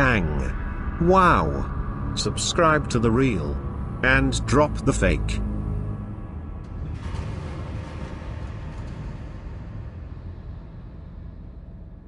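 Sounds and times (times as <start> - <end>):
dark ominous background music: 0.0 - 12.0.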